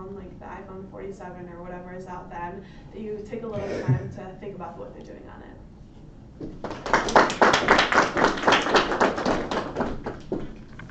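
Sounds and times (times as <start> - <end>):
small group applauding: 6.4 - 10.9.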